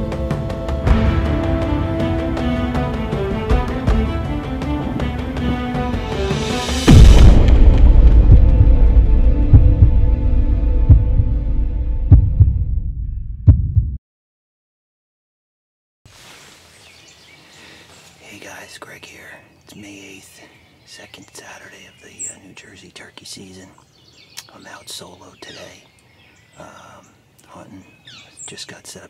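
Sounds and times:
intro music: 0.0 - 13.8
deep cinematic boom: 0.9 - 14.0.

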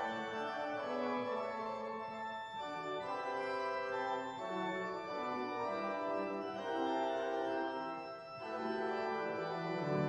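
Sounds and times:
church organ playing chords: 0.0 - 10.0.

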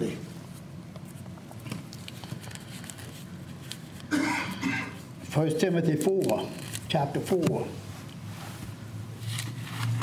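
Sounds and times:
pages being turned: 0.5 - 4.1, 5.8 - 10.0.

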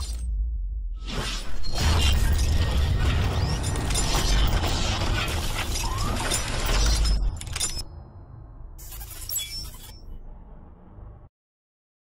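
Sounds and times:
heavy low rumble: 0.1 - 1.1.

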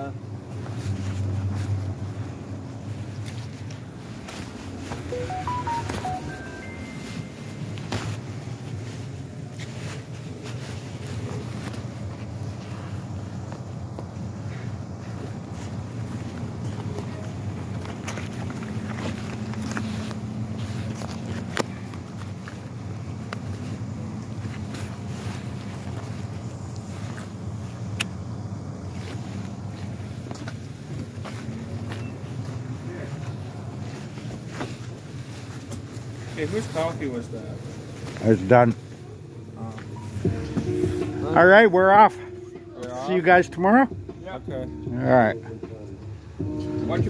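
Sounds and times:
car engines rumbling: 0.0 - 5.1, 7.3 - 47.0.

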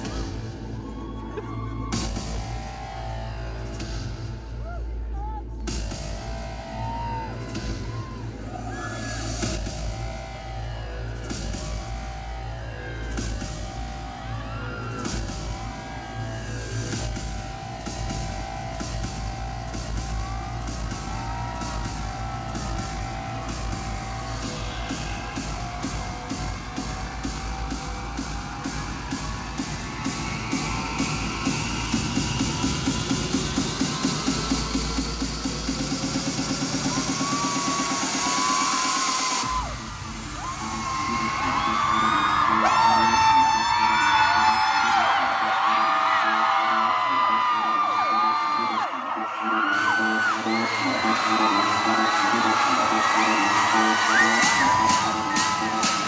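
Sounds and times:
crowd screaming: 0.0 - 56.0
electronic music with beat: 0.0 - 56.0.

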